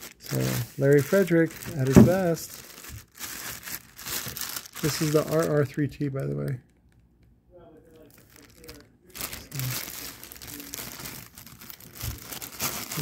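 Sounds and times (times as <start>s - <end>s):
plastic wrap crinkling: 0.0s - 7.0s, 7.9s - 13.0s.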